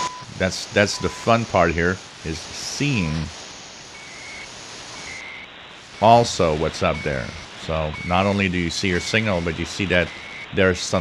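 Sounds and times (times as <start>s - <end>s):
high time signal beeps: 0.0s - 1.4s, 2.7s - 3.3s, 3.9s - 10.6s
shortwave radio static: 0.0s - 11.0s.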